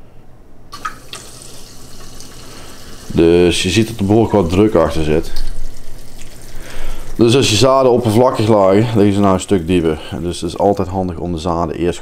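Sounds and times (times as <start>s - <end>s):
low pump hum: 0.7s - 11.5s
water jets hissing and splashing: 0.8s - 10.9s.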